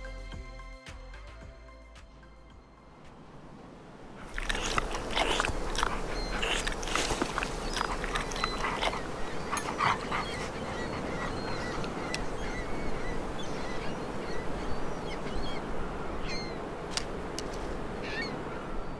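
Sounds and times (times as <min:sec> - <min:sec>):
high bird calls: 0:04.3 - 0:16.6, 0:18.0 - 0:18.9.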